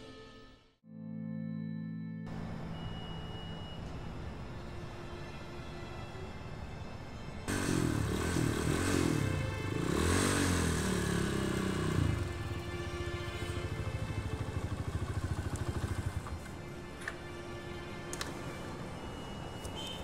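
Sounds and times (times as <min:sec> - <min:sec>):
dirt bike engine revving: 0:07.5 - 0:16.2.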